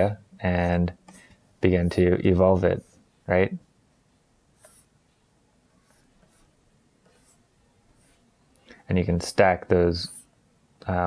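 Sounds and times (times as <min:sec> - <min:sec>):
stylus scratching on tablet: 0:00.0 - 0:03.0, 0:04.6 - 0:05.0, 0:05.8 - 0:08.3, 0:10.0 - 0:10.4.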